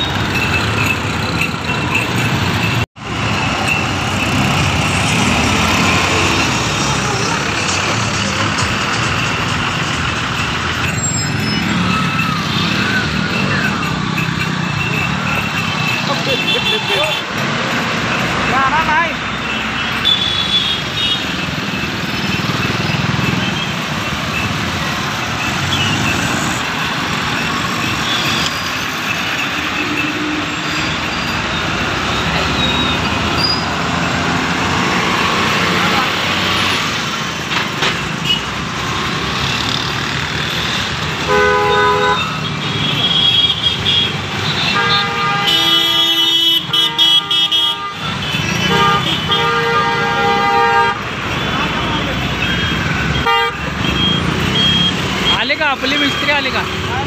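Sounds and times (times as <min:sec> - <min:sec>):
road traffic engines: 0:00.0 - 0:57.0
voices: 0:03.4 - 0:20.1, 0:51.0 - 0:57.0
vehicle horns honking: 0:10.9 - 0:37.0, 0:38.1 - 0:39.7, 0:40.3 - 0:57.0.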